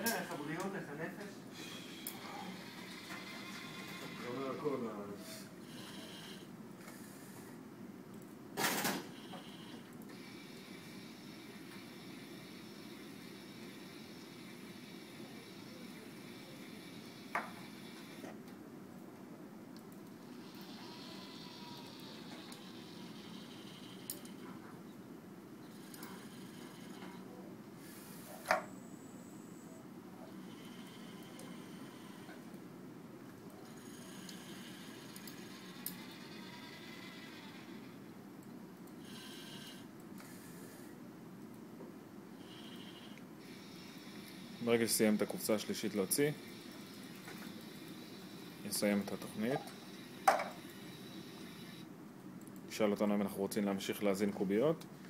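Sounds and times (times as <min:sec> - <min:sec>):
conveyor belt humming: 0:09.0 - 0:41.0
servo motors whining: 0:20.4 - 0:24.1.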